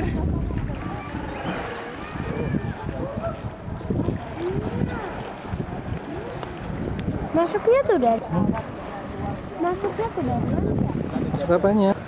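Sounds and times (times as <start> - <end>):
faint voices: 0.0 - 12.0
wind buffeting microphone: 0.0 - 12.0.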